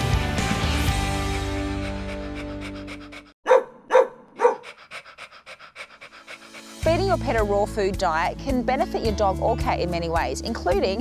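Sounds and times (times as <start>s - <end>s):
dog panting: 1.2s - 7.6s
dog barking: 3.4s - 4.8s.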